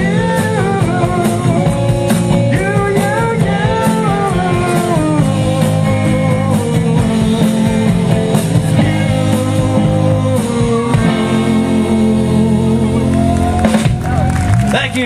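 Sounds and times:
sliding lead guitar melody: 0.0s - 14.5s
rock band playing: 0.0s - 15.0s.

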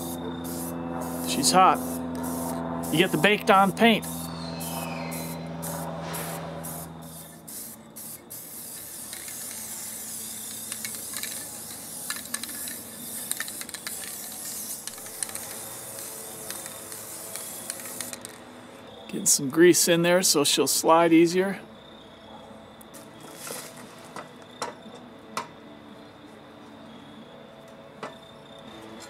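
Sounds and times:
aerosol spray can hissing: 0.0s - 18.4s.

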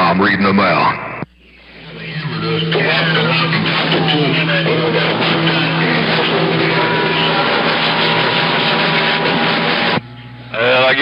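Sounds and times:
garbled radio transmissions: 0.0s - 11.0s
radio static: 0.0s - 11.0s
steady whistle: 1.4s - 10.5s.

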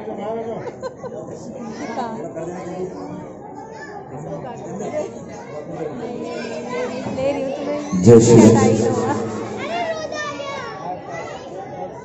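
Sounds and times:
crowd chatter: 4.5s - 10.6s.

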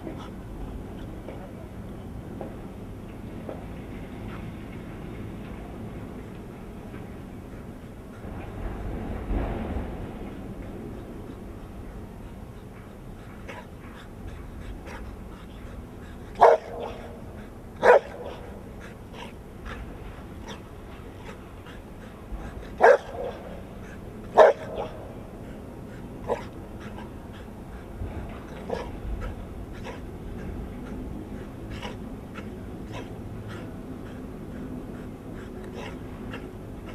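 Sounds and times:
large dog barking: 16.4s - 19.3s, 22.6s - 23.6s, 24.3s - 25.2s.

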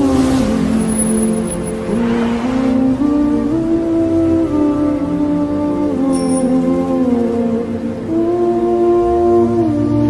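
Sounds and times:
vehicle driving past: 0.0s - 4.0s
music: 0.0s - 10.0s.

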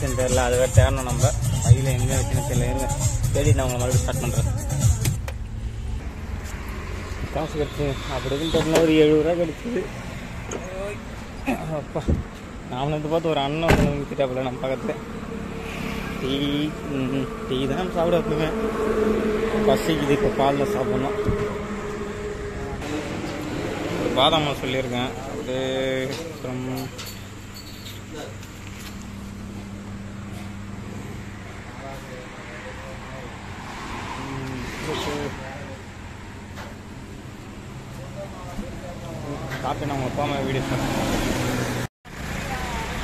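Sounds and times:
road traffic noise: 0.0s - 43.0s
voices talking: 7.1s - 28.6s.

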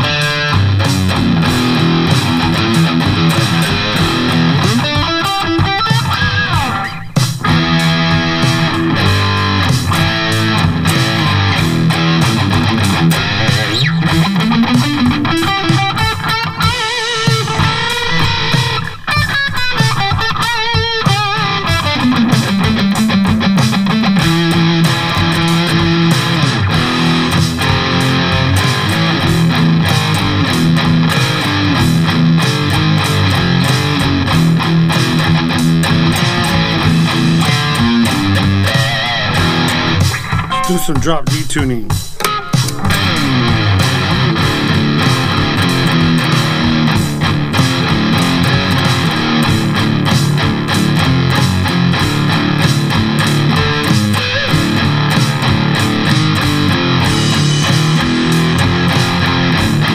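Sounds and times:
distorted electric guitar: 0.0s - 59.9s
drum track: 0.0s - 59.9s.

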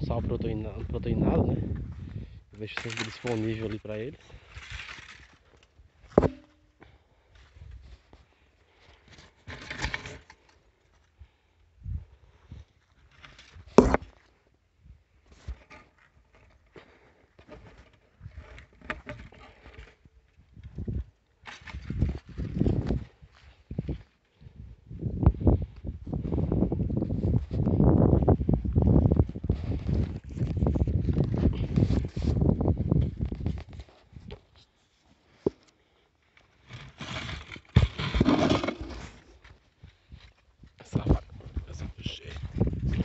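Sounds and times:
wind buffeting microphone: 0.0s - 2.4s, 21.8s - 34.3s, 40.9s - 43.0s.

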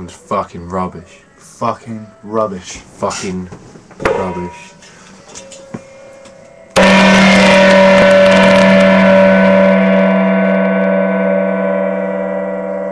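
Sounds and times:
loud ringing musical chord: 6.0s - 12.9s.

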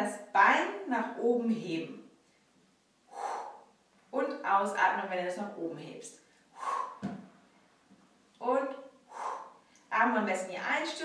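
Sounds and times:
woman breathing: 2.2s - 3.8s, 6.2s - 7.4s, 9.0s - 9.9s.

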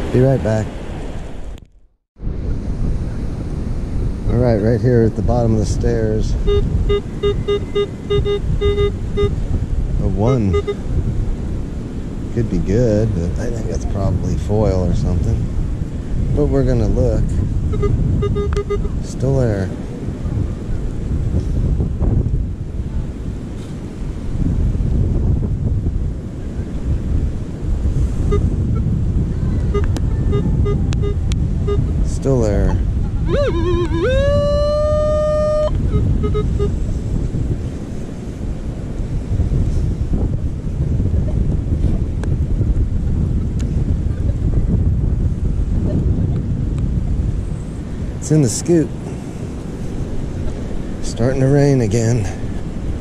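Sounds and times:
wind buffeting microphone: 0.0s - 53.0s
surf: 2.2s - 53.0s
faint short electronic beeps: 6.4s - 9.4s, 10.3s - 10.8s, 17.7s - 19.0s, 29.7s - 31.8s, 33.3s - 36.8s
sliding pitched tone: 6.4s - 10.8s, 17.7s - 19.0s, 29.6s - 36.9s.

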